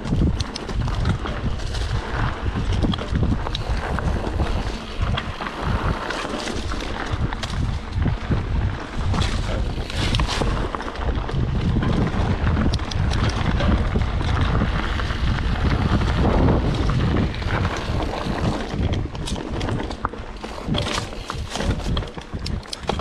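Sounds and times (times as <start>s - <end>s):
bike clicks and rattles: 0.0s - 23.0s
bike tyres rolling on dirt: 0.0s - 23.0s
wind buffeting microphone: 0.0s - 23.0s.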